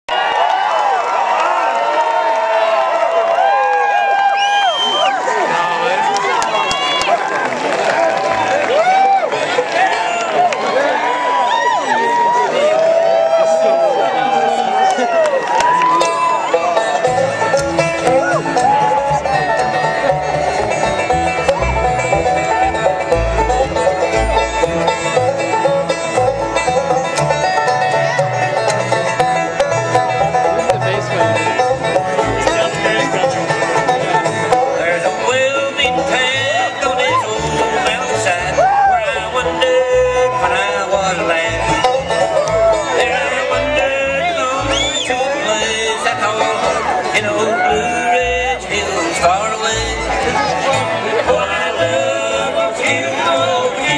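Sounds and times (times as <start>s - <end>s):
banjo: 5.2s - 53.9s
fiddle: 8.0s - 53.9s
mandolin: 14.8s - 53.9s
plucked upright bass: 15.8s - 53.9s
acoustic guitar: 16.0s - 53.9s.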